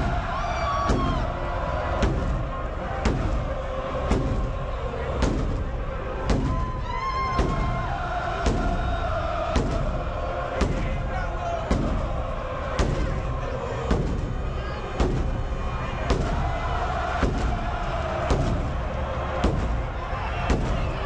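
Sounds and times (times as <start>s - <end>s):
bass drum beats: 0.0s - 21.0s
stadium crowd noise: 0.0s - 21.0s.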